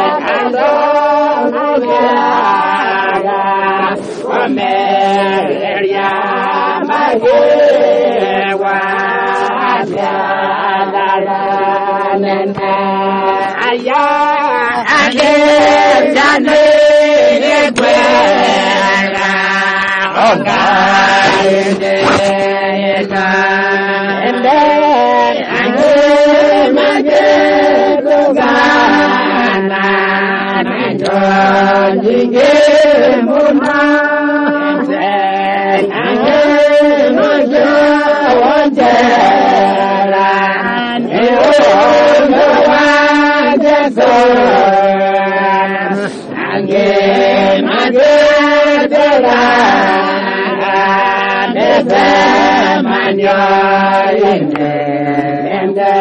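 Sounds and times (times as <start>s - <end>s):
person singing chant-like melody: 0.0s - 56.0s.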